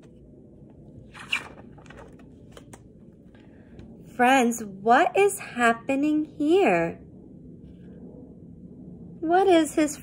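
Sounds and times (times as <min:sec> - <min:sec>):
paper pages rustling: 0:01.1 - 0:03.4.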